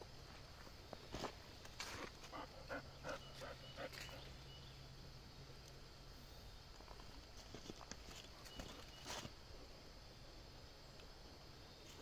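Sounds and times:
faint outdoor ambience: 0.0s - 12.0s.

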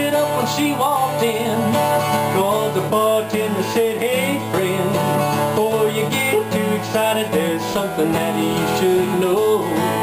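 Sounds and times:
acoustic guitar: 0.0s - 10.0s
man singing: 0.0s - 10.0s.

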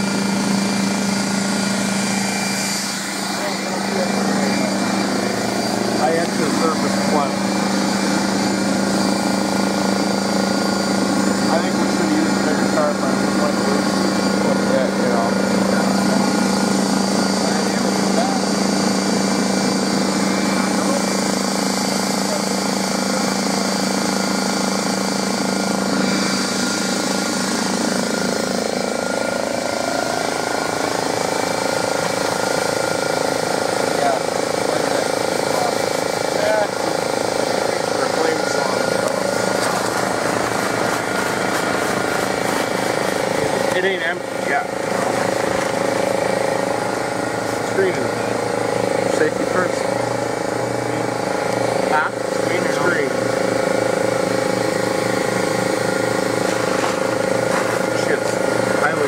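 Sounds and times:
air compressor drone: 0.0s - 59.0s.

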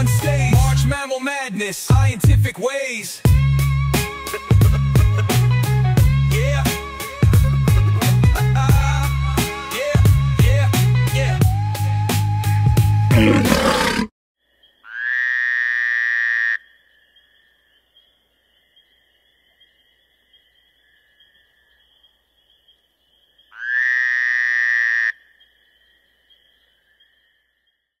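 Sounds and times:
loud long animal calls: 13.1s - 14.1s.

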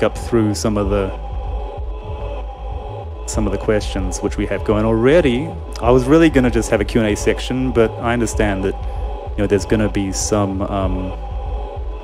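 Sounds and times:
low bass hum: 0.0s - 12.0s
synthesizer pad chord: 0.0s - 12.0s.

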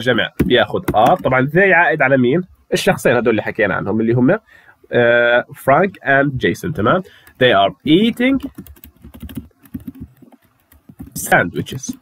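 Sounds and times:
typing on computer keyboard: 0.4s - 1.3s, 8.2s - 12.0s.

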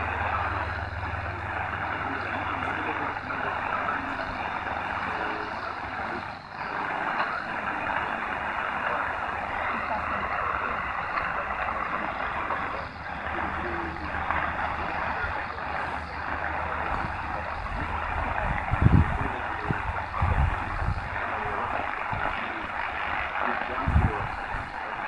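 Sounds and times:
heavy radio static: 0.0s - 25.0s
low hum: 0.0s - 25.0s
weak shortwave radio signal: 0.0s - 25.0s.

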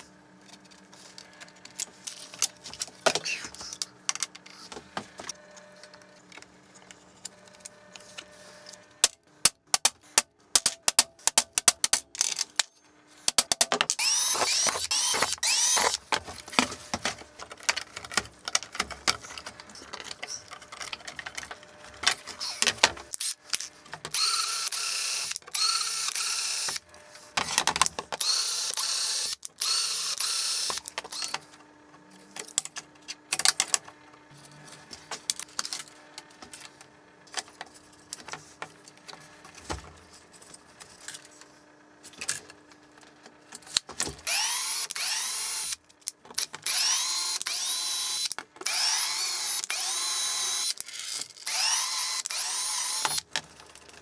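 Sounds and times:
clicks and knocks of handled parts: 0.4s - 24.2s, 32.2s - 34.0s, 34.8s - 44.3s
cordless drill bursts: 14.0s - 16.0s, 24.1s - 26.8s, 28.2s - 31.3s, 44.2s - 45.8s, 46.6s - 53.2s.

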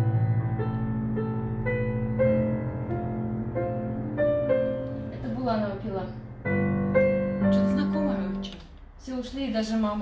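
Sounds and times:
digital piano chords: 0.0s - 10.0s
woman's voice: 5.1s - 6.2s, 7.5s - 10.0s.

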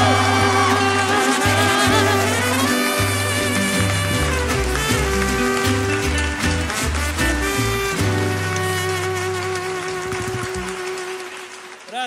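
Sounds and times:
violins holding a long note: 0.0s - 5.9s
low bass notes: 0.0s - 10.8s.

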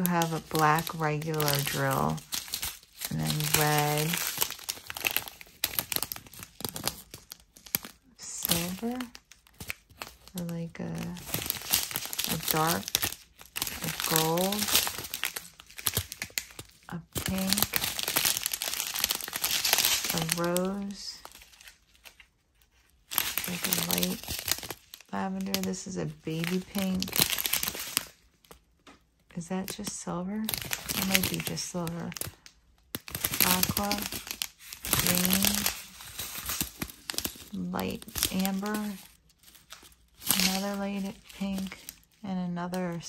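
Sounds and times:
plastic bags crinkling: 0.0s - 28.7s, 29.7s - 43.0s.

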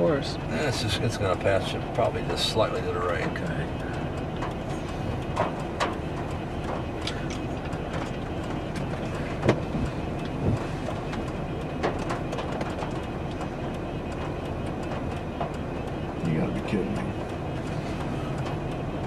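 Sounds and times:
vehicle rumble inside cabin: 0.0s - 19.0s
sharp clicks and knocks: 1.2s - 19.0s.

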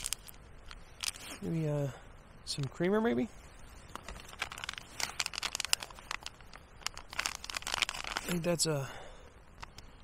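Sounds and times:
foil packets crinkling: 4.0s - 8.6s.

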